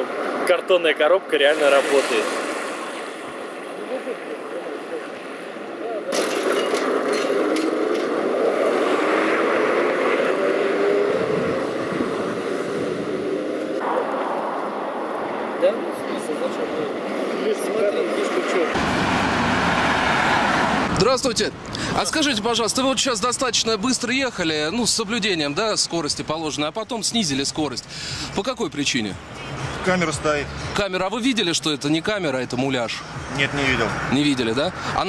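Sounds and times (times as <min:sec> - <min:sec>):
cars passing on street: 0:00.0 - 0:35.0.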